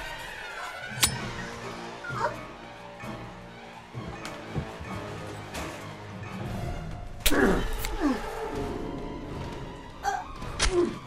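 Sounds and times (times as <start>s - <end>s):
suspense film score: 0.0s - 11.0s.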